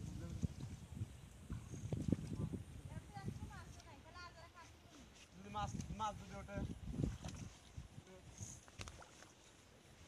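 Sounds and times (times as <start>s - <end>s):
water sloshing and splashing: 0.0s - 10.0s.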